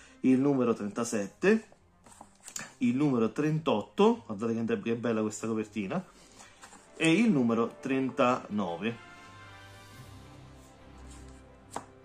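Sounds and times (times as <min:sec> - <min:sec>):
handling comic books on table: 0:01.6 - 0:03.0, 0:06.2 - 0:08.3, 0:11.0 - 0:12.0.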